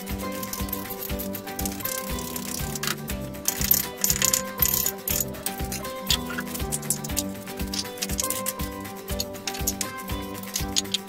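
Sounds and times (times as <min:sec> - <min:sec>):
background music: 0:00.0 - 0:11.0
brick and tile rubble clinking: 0:00.2 - 0:11.0.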